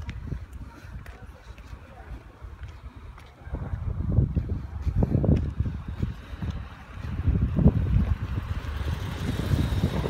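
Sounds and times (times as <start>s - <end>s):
wind buffeting microphone: 0.0s - 10.0s
minivan driving past: 6.8s - 10.0s.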